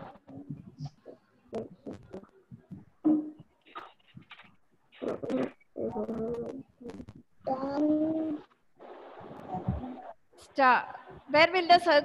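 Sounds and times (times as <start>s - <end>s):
microphone hiss: 0.0s - 12.0s
child humming drawn-out vowel: 7.5s - 8.4s.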